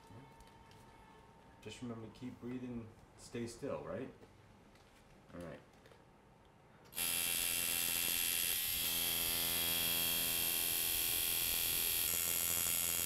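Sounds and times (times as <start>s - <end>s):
tattoo machine buzzing: 6.9s - 13.0s.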